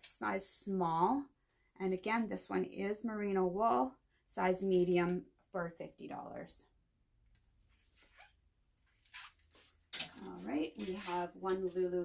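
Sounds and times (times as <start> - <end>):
sweater and plastic hanger rustling: 7.5 - 12.0.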